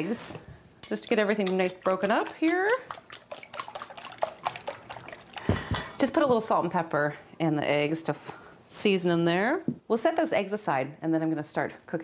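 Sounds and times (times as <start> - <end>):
whisk clicking against bowl: 0.8 - 5.4
liquid egg sloshing: 0.8 - 6.2.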